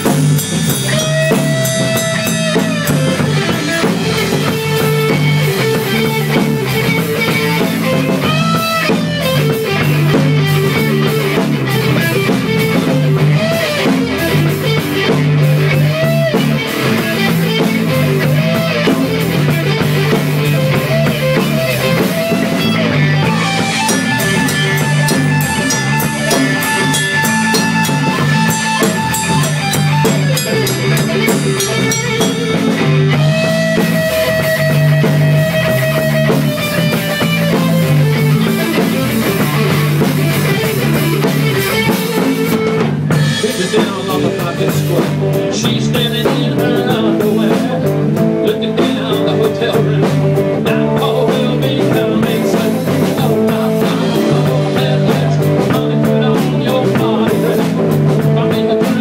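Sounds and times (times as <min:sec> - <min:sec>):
drum kit: 0:00.0 - 0:59.0
electric guitar bending notes: 0:00.0 - 0:59.0.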